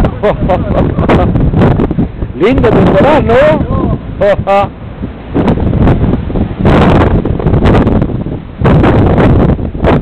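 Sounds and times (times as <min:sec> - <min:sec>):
strong gusting wind on microphone: 0:00.0 - 0:10.0.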